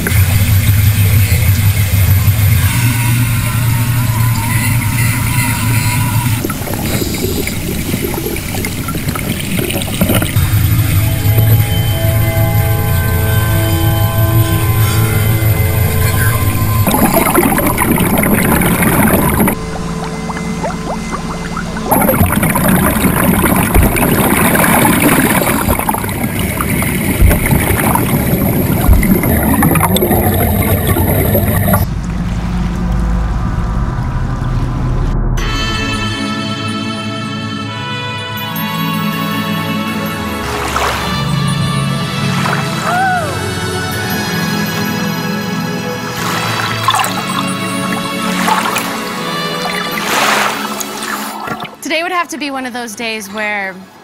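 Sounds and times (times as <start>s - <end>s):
water pouring and splashing: 0.0s - 12.4s, 13.9s - 34.5s, 40.1s - 43.4s, 45.8s - 51.9s
background music: 10.2s - 31.9s, 35.4s - 54.0s.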